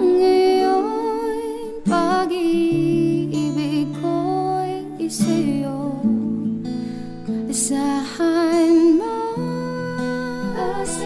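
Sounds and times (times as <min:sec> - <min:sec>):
acoustic guitar plucked and strummed: 0:00.0 - 0:11.0.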